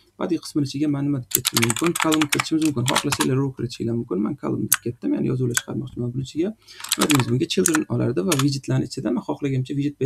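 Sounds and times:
person talking: 0.2 - 10.0
computer keyboard typing: 1.3 - 3.3, 6.8 - 8.6.

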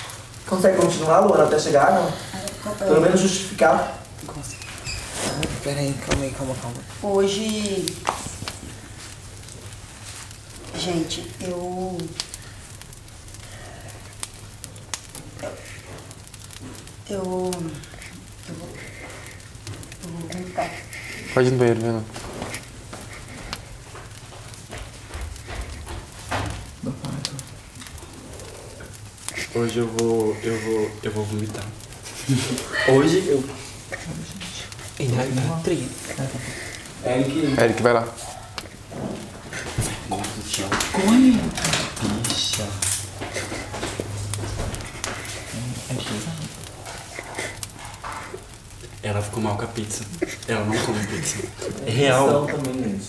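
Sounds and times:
clicks and rustles of people moving: 4.2 - 11.4, 14.9 - 28.2, 28.8 - 51.8.

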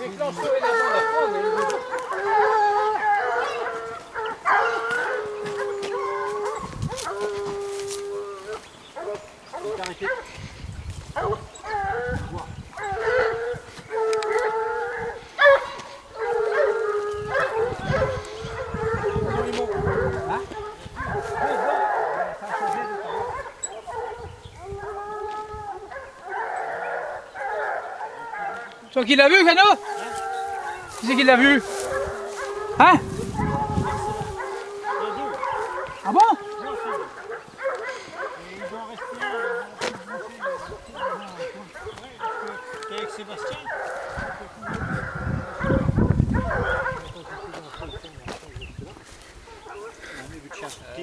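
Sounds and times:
hounds baying and howling: 0.0 - 51.0.

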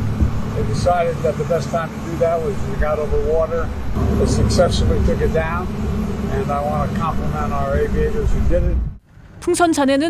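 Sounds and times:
low rumble: 0.0 - 9.0
man speaking: 0.6 - 8.9.

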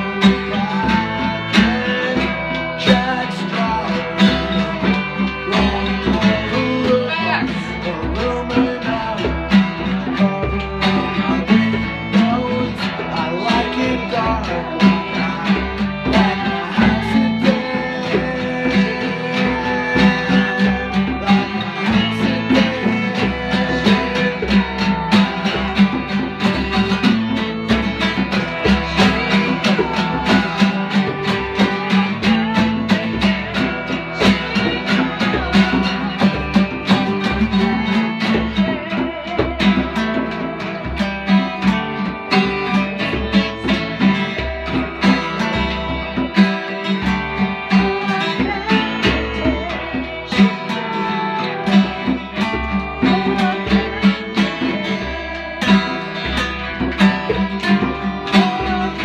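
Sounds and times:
acoustic guitars strumming: 0.0 - 59.0
bowed fiddle melody: 0.0 - 59.0.

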